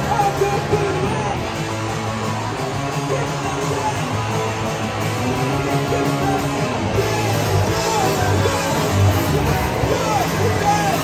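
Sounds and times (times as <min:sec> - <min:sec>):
punk rock band playing: 0:00.0 - 0:11.0.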